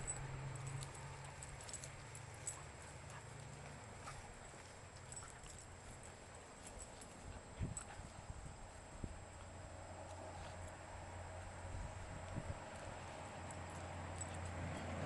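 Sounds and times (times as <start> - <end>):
dogs moving on grass: 0.0 - 15.0.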